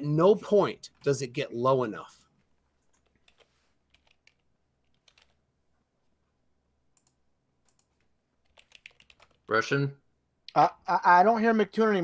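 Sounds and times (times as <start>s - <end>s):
faint keyboard typing clicks: 2.8s - 5.4s, 6.9s - 9.5s.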